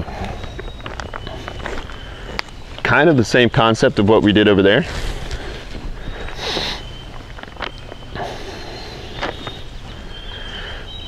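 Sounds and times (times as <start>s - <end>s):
faint steady high tone: 0.0s - 3.9s
handling rustle: 0.1s - 3.3s, 4.0s - 10.0s.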